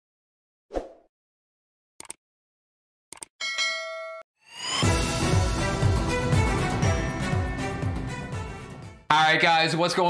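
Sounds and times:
notification bell ding: 0:03.4 - 0:04.3.

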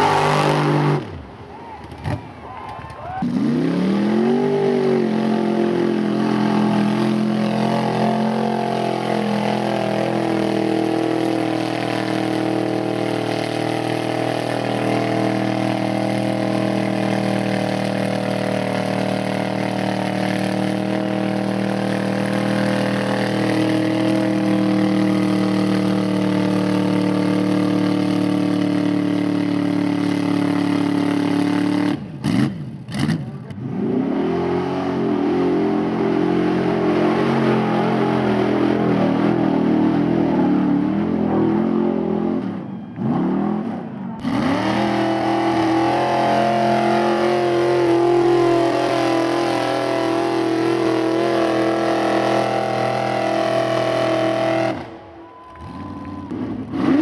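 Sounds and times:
truck engine revving in mud: 0:00.0 - 0:02.4, 0:03.2 - 0:57.0.

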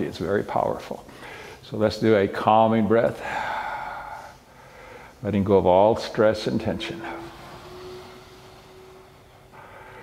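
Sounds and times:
faint steady hum: 0:00.0 - 0:10.0
soft hiss: 0:00.0 - 0:10.0.

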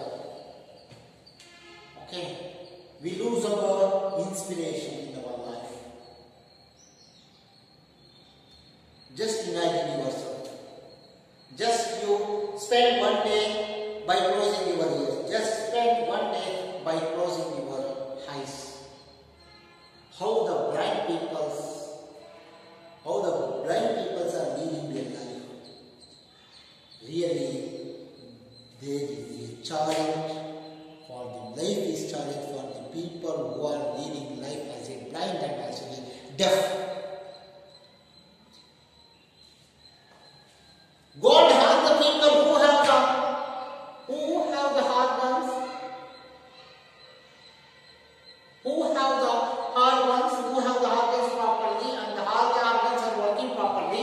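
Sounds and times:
man talking: 0:00.0 - 0:00.4, 0:02.0 - 0:06.0, 0:09.1 - 0:10.5, 0:11.5 - 0:18.8, 0:20.2 - 0:21.9, 0:23.1 - 0:25.5, 0:27.0 - 0:30.5, 0:31.1 - 0:37.0, 0:41.2 - 0:43.4, 0:44.0 - 0:45.9, 0:48.7 - 0:54.0.

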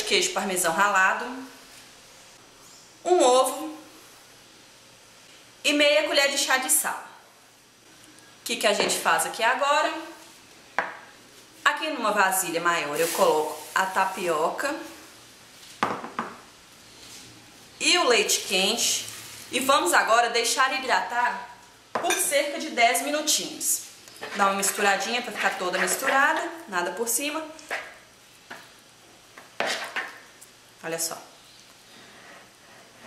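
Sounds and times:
spoon stirring in plastic bowl: 0:24.1 - 0:26.5.

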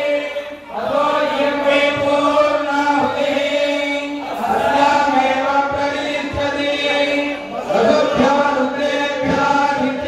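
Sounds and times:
men chanting through microphone: 0:00.0 - 0:10.0.

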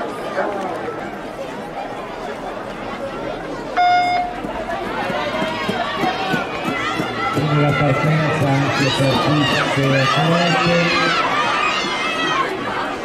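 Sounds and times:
crowd chatter: 0:00.0 - 0:13.0
start signal beep: 0:03.8 - 0:04.4.

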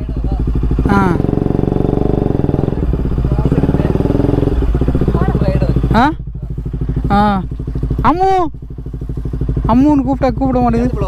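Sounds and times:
motorcycle engine running: 0:00.0 - 0:11.0
voices: 0:00.0 - 0:11.0.

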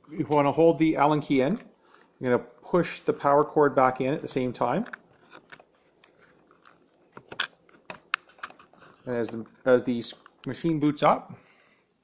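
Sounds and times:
cables being handled: 0:01.3 - 0:10.7.

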